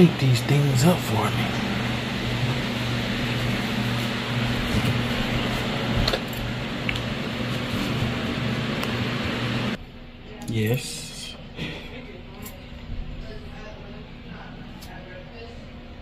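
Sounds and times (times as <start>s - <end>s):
fan humming and whooshing: 0.0s - 16.0s.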